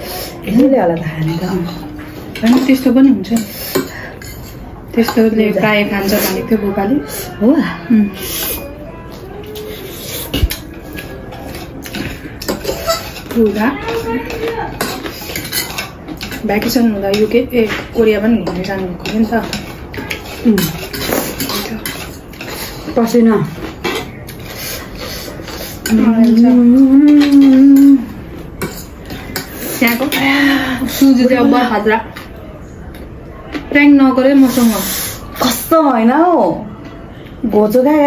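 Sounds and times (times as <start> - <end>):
utensils scraping noodles on plates: 0.0 - 8.8, 9.4 - 31.7, 34.3 - 35.6.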